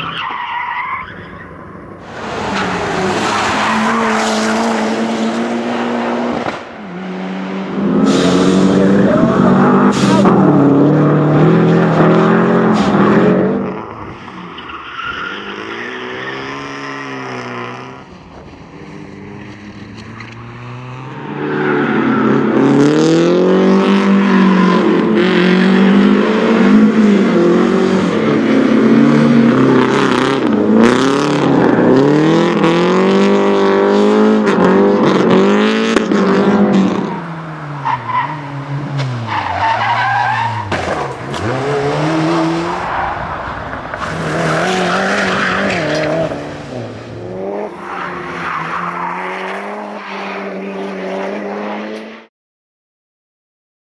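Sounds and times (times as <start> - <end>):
rally car engines revving: 1.2 - 52.3.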